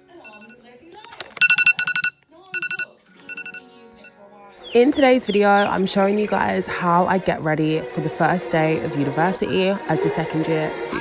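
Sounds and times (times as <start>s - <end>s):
phone alarm beeping: 0.2s - 0.6s, 1.3s - 5.0s.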